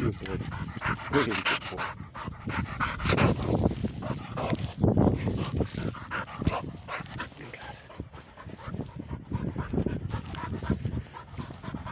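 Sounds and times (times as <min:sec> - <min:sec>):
dog panting rapidly: 0:00.0 - 0:11.9
wind rumble on microphone: 0:00.0 - 0:11.9.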